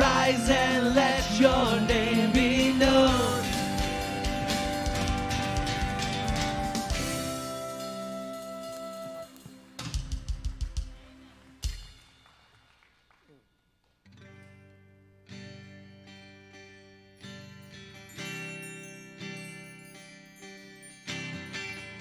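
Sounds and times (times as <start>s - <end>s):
guitars playing slow chords: 0.0s - 11.4s, 14.2s - 18.3s
drum hits: 1.2s - 7.5s.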